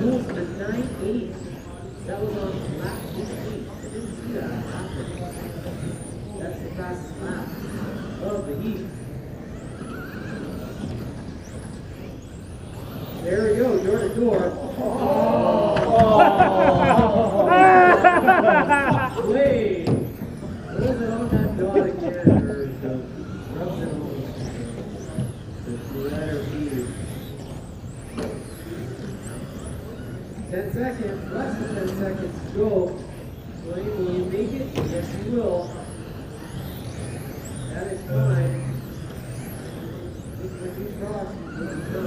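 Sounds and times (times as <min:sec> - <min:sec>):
rc car motors whining: 0:00.0 - 0:42.0
tyre and hall noise: 0:00.0 - 0:42.0.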